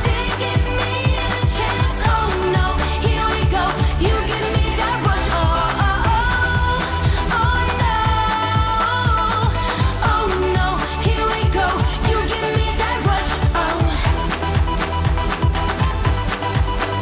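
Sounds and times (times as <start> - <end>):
backing music with drums and bass: 0.0 - 17.0
woman singing pop song: 0.0 - 17.0.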